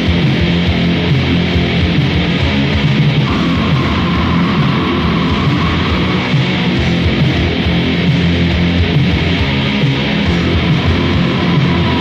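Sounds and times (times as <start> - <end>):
heavy metal music: 0.0 - 12.0.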